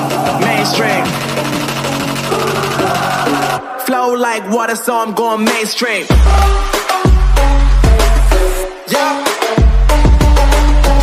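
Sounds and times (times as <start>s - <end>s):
person rapping: 0.0s - 1.4s, 2.2s - 11.0s
hip-hop beat with synth bass: 0.0s - 11.0s.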